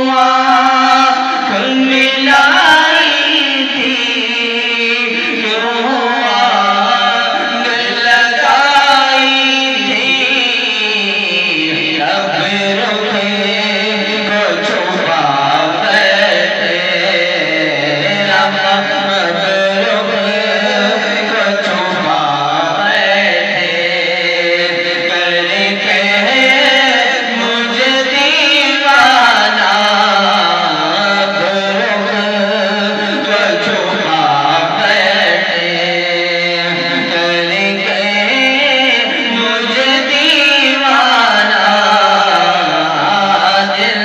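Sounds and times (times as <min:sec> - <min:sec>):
men singing devotional song: 0:00.0 - 0:44.0.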